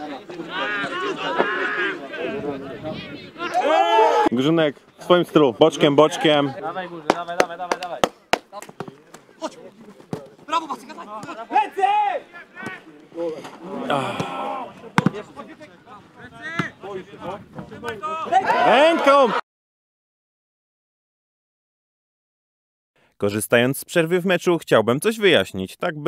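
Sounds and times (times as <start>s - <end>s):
players shouting: 0.0s - 19.4s
football being kicked: 14.9s - 15.3s, 16.4s - 16.8s.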